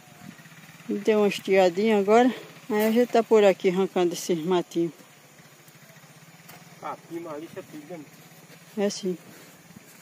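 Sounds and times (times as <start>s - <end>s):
engine humming: 0.0s - 10.0s.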